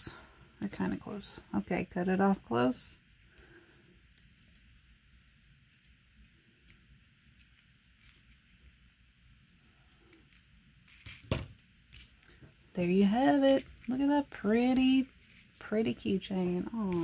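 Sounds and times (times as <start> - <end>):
plastic beads handled on table: 9.9 - 14.1.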